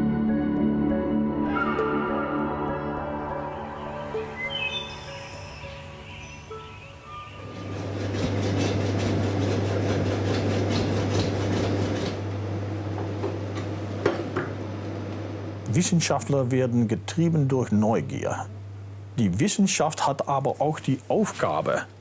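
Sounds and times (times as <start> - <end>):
soundtrack music: 0.0 - 7.8
steady low hum: 5.2 - 22.0
bow saw cutting: 7.5 - 12.2.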